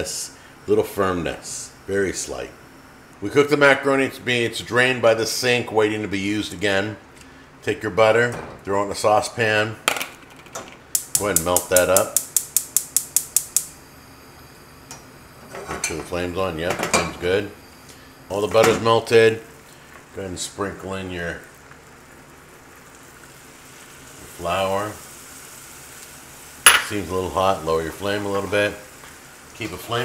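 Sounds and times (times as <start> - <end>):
gas burner hissing: 0.0 - 2.5, 10.9 - 30.0
gas burner igniter clicking: 10.9 - 13.8
butter and flour sizzling: 17.1 - 30.0
glassware clinking: 26.7 - 26.9.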